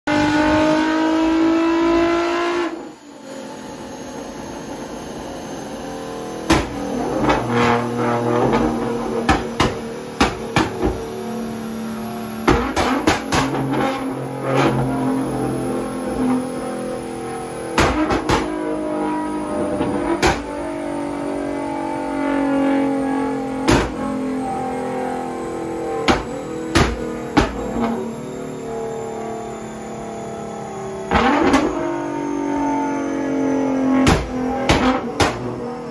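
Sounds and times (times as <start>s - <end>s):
car engine revving: 0.1s - 35.9s
exhaust bangs and pops: 6.5s - 11.0s, 12.4s - 14.9s, 17.8s - 18.6s, 19.6s - 20.5s, 23.7s - 24.1s, 26.0s - 28.0s, 34.0s - 35.6s.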